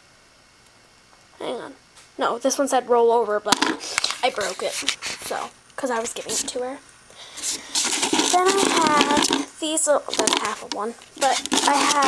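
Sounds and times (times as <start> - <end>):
person talking: 1.4 - 6.8, 8.2 - 12.0
hand rummaging through hard treats: 7.4 - 9.5, 10.1 - 12.0.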